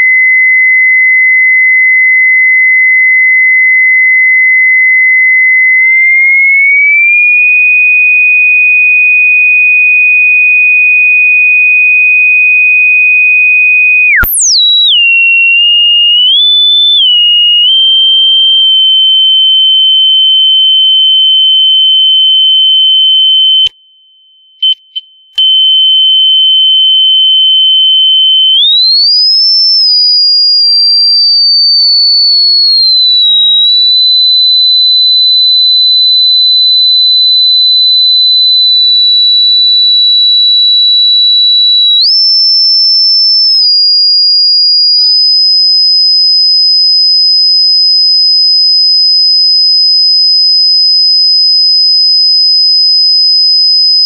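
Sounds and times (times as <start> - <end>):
high-pitched sine test tone: 0.0 - 54.0.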